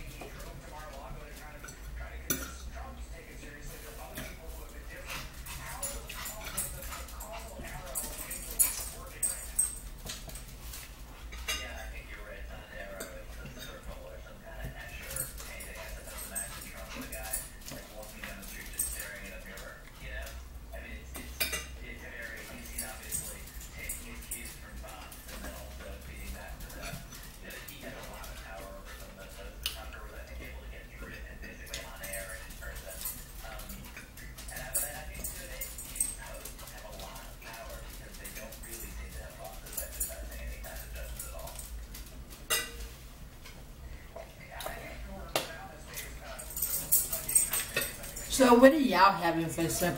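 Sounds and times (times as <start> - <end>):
forks clinking against plates: 0.1 - 48.8.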